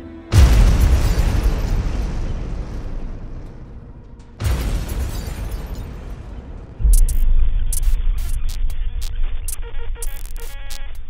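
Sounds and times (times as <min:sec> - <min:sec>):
deep explosion rumble: 0:00.4 - 0:11.0.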